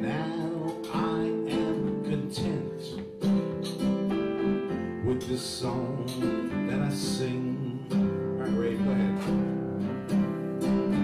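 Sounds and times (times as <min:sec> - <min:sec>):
acoustic guitar strumming: 0:00.0 - 0:11.0
electric keyboard: 0:00.0 - 0:11.0.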